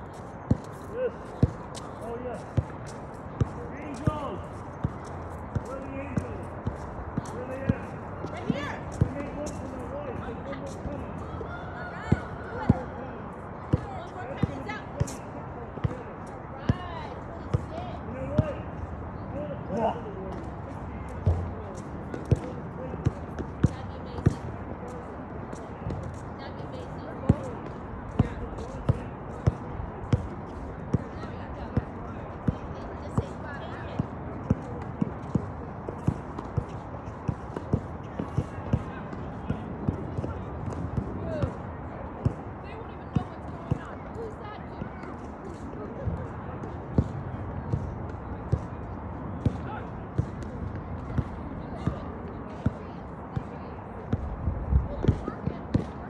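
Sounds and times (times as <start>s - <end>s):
faint distant voices: 0.0s - 56.0s
basketballs bouncing on court: 0.5s - 9.5s, 13.7s - 15.2s, 16.6s - 18.6s, 21.2s - 24.5s, 27.2s - 45.1s, 46.0s - 48.8s, 49.4s - 54.3s, 54.9s - 56.0s.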